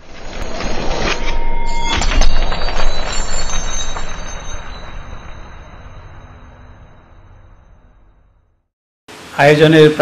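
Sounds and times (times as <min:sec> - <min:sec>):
metallic rush with ringing tones: 0:00.1 - 0:08.6.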